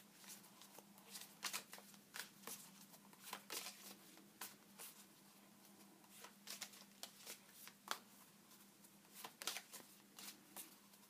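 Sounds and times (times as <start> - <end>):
cards being shuffled by hand: 0.2 - 5.1, 6.0 - 11.0.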